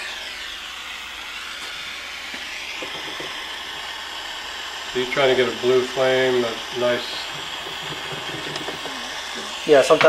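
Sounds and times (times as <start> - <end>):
torch flame hissing: 0.0 - 10.0.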